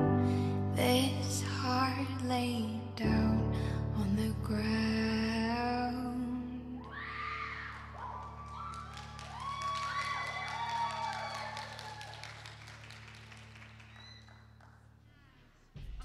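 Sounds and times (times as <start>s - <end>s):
audience applauding and cheering: 6.9s - 15.0s.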